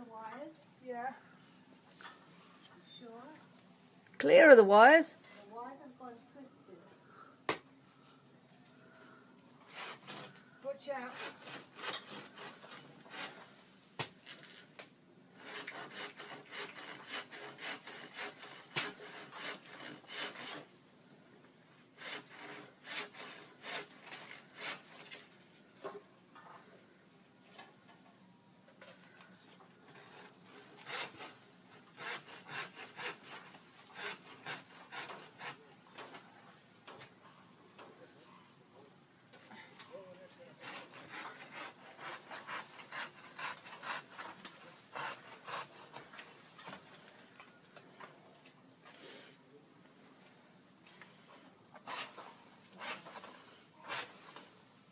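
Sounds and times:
hand saw cutting wood: 0:09.7 - 0:13.5, 0:15.4 - 0:20.7, 0:22.0 - 0:25.3, 0:29.9 - 0:36.2, 0:40.4 - 0:46.8, 0:51.8 - 0:54.6.

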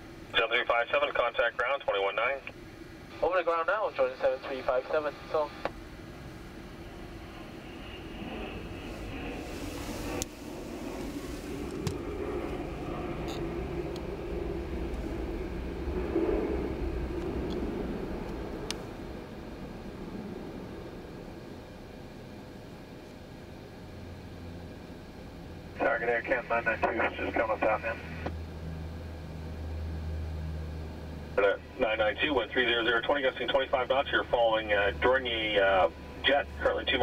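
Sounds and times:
jet airliner passing overhead: 0:00.0 - 0:37.0.

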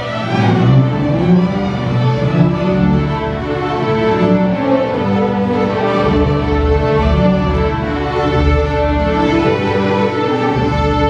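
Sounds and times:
string orchestra playing: 0:00.0 - 0:11.0.

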